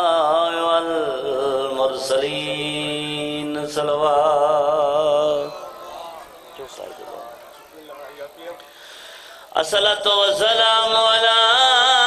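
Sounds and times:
faint murmur of voices: 0:05.2 - 0:09.6.

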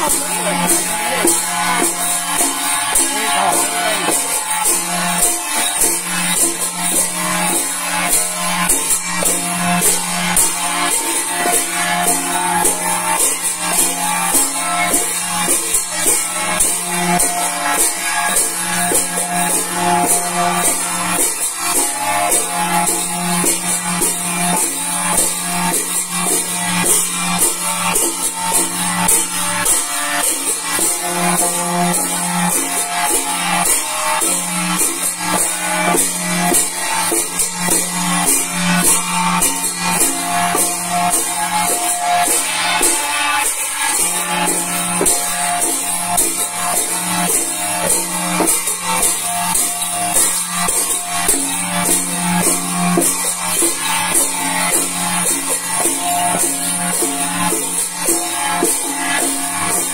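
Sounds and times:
hand gongs clanging: 0:00.0 - 0:59.9
ritual music with driving beat: 0:00.0 - 0:59.9.

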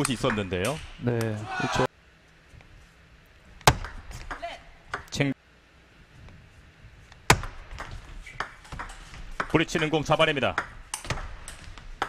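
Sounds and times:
table tennis ball crack: 0:10.5 - 0:12.0.

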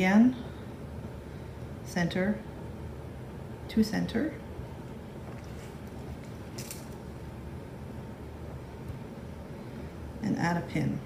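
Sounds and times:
low room hum: 0:00.0 - 0:11.0
fabric rustling: 0:05.2 - 0:07.1.

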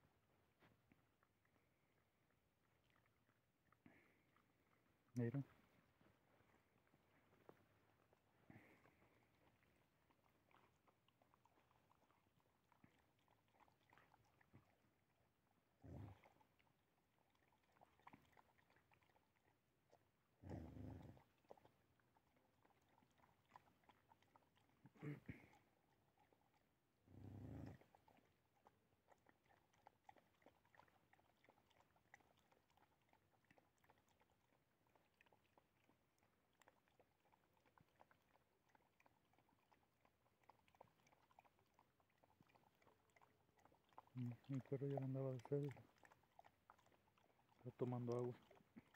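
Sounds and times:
dogs chewing: 0:00.5 - 0:48.9.

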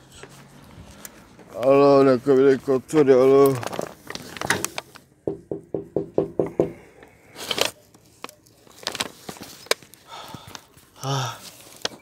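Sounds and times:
rapid knocking: 0:05.3 - 0:06.8.

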